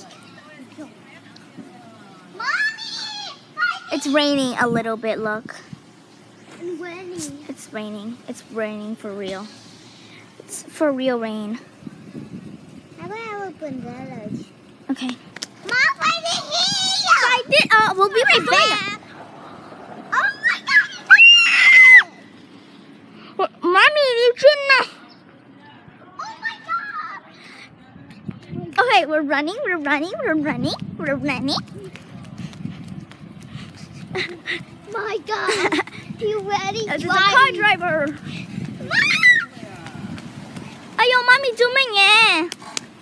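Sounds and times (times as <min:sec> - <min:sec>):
child shouting and screaming: 0:02.4 - 0:04.0, 0:15.7 - 0:19.0, 0:20.1 - 0:22.2, 0:26.2 - 0:27.4, 0:34.9 - 0:38.2, 0:38.8 - 0:39.6
child squealing: 0:20.1 - 0:22.2, 0:38.8 - 0:39.6.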